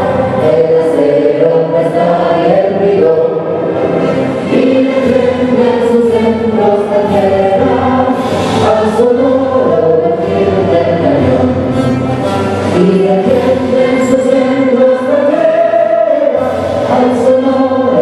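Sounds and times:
vocal trio singing in harmony: 0:00.0 - 0:11.8, 0:12.5 - 0:18.0.

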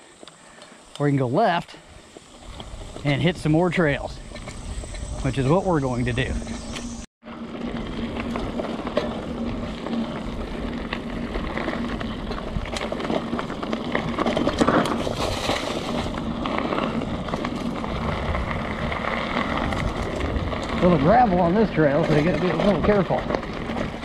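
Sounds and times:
bike tyres rumbling on dirt: 0:00.0 - 0:24.0
bike clicks and rattles: 0:02.1 - 0:24.0
wind buffeting microphone: 0:02.3 - 0:07.0, 0:13.8 - 0:24.0.

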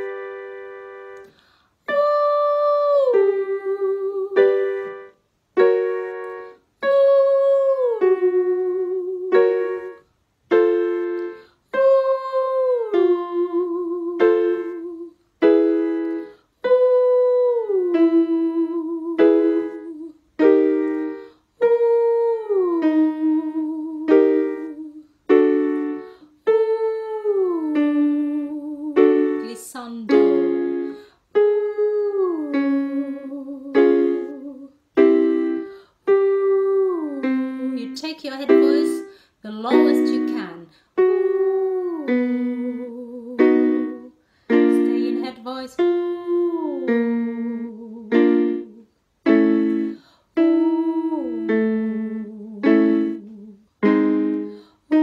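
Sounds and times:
keyboard chords: 0:00.0 - 0:55.0
woman singing sliding ooh: 0:01.8 - 0:10.0, 0:10.6 - 0:48.9, 0:49.5 - 0:55.0.

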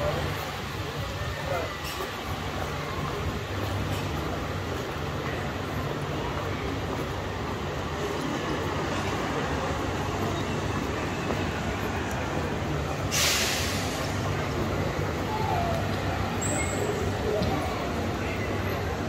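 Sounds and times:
city street noise: 0:00.0 - 0:19.0
tram humming: 0:00.0 - 0:19.0.

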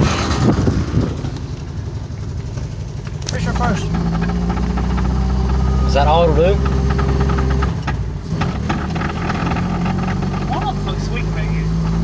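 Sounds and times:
car engine running from inside cabin: 0:00.0 - 0:12.0.

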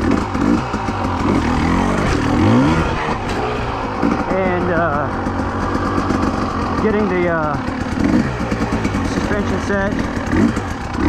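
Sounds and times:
dirt bike engine revving: 0:00.0 - 0:11.0.

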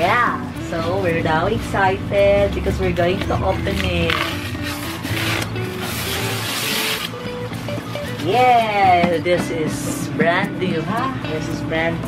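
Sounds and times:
plastic wrap crinkling: 0:03.6 - 0:07.2.

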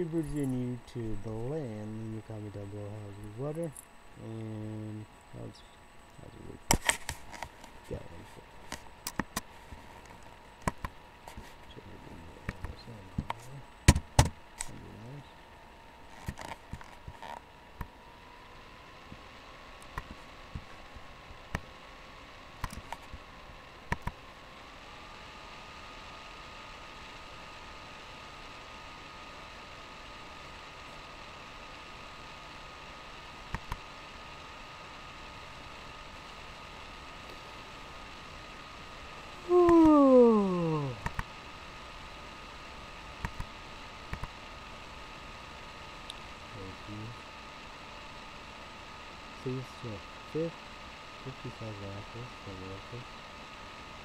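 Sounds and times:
faint steady hum: 0:00.0 - 0:54.0.

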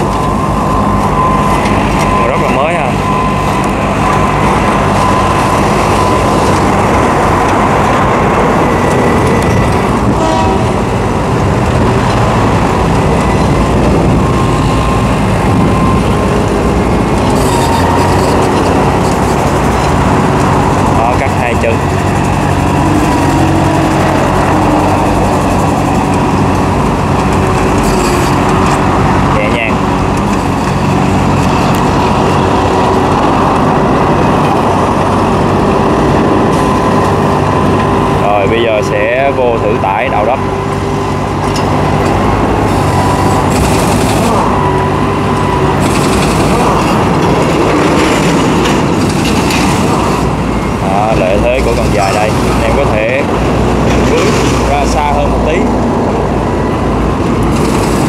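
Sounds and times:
excavator diesel engine running: 0:00.0 - 0:58.0
hydraulic whine: 0:00.0 - 0:58.0
brief wavering squeal: 0:17.4 - 0:18.5.

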